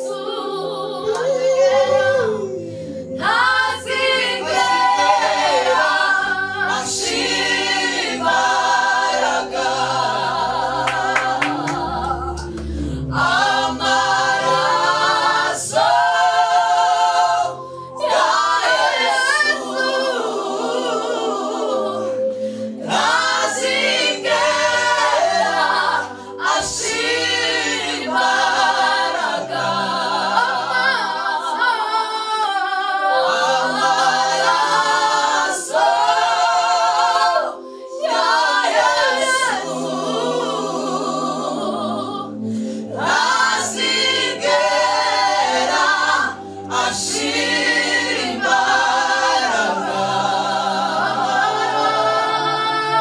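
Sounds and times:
a cappella gospel group singing: 0:00.0 - 0:53.0.

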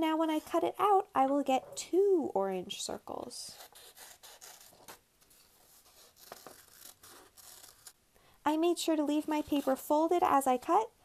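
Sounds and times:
scissors snipping paper: 0:03.5 - 0:08.0
paper rustling: 0:03.8 - 0:08.0.

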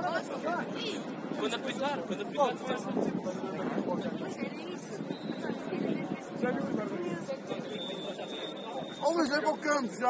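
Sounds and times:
players calling and chattering: 0:00.0 - 0:10.0.

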